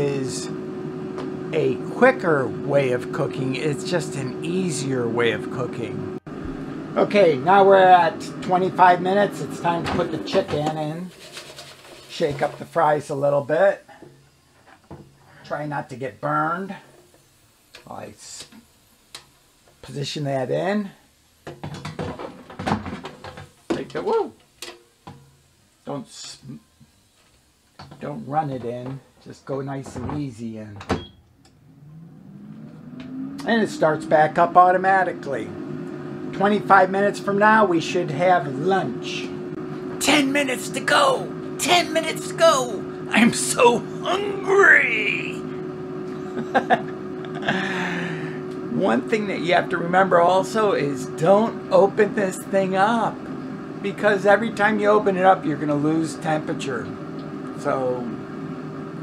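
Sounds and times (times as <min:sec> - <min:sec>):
air fryer humming: 0:00.0 - 0:59.0
person speaking: 0:07.0 - 0:11.4, 0:12.0 - 0:13.8, 0:40.0 - 0:45.5
man's breathy vocal sound: 0:47.4 - 0:48.5.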